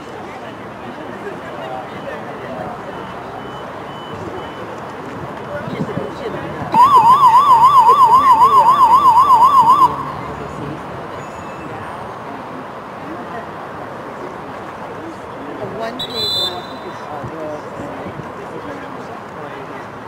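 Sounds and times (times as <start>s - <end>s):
faint crowd noise: 0.0s - 20.0s.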